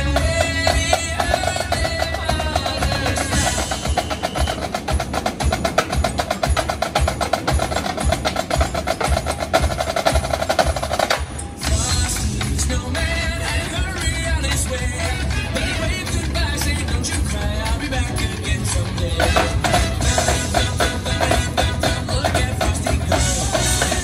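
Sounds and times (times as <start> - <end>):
backing track with melody: 0.0 - 24.0
marching snare drums: 0.0 - 24.0.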